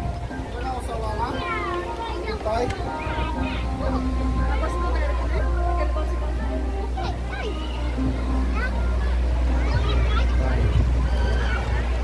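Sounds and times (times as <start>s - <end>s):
background music: 0.0s - 12.0s
children's high-pitched voices: 1.3s - 12.0s
children squealing: 11.0s - 12.0s.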